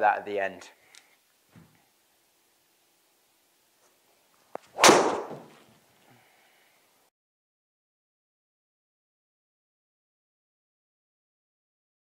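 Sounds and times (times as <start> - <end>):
golf club striking ball: 4.8 - 5.6.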